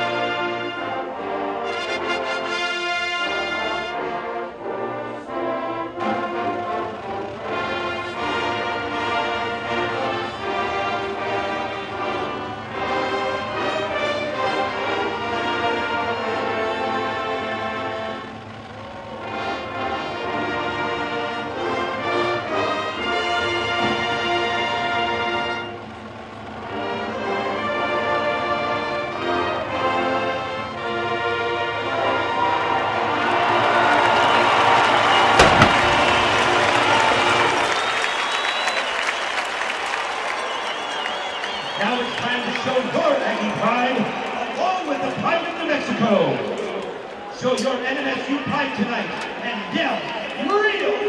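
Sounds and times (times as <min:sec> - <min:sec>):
marching band brass chords: 0:00.0 - 0:47.4
crowd cheering and applause: 0:31.7 - 0:51.0
sharp crack: 0:35.4 - 0:37.4.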